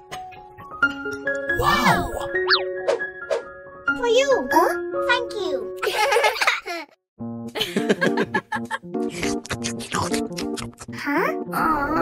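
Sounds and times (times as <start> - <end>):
cartoon voice laughing: 8.6 - 11.0.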